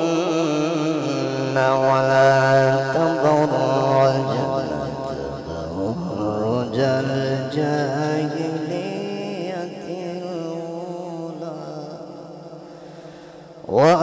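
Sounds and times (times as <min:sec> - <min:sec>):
man reciting melodically: 0:00.0 - 0:14.0.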